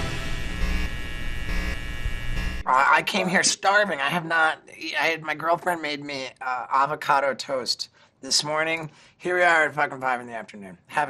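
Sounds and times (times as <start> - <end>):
music: 0.0 - 1.0
neon sign electrical hum: 0.0 - 5.4.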